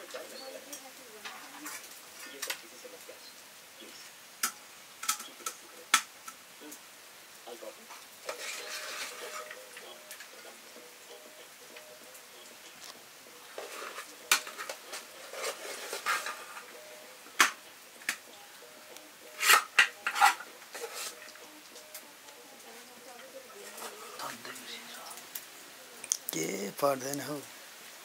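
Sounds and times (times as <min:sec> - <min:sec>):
metal spoon scraping pots: 0:08.3 - 0:10.0, 0:13.6 - 0:16.7, 0:19.3 - 0:21.3.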